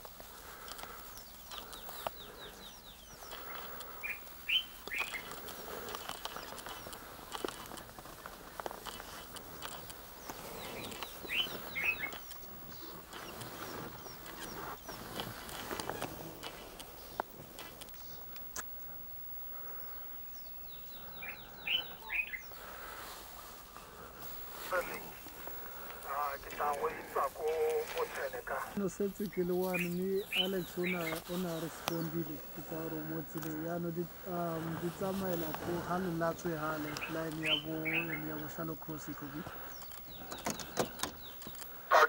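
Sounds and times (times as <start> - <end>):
birds chirping: 0.0 - 42.0.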